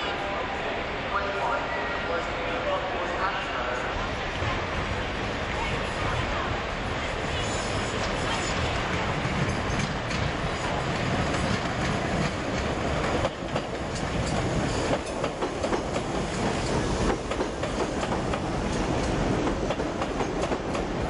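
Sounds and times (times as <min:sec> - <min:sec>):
train running rumble: 0:03.8 - 0:21.0
train wheels clicking over rail joints: 0:08.0 - 0:21.0.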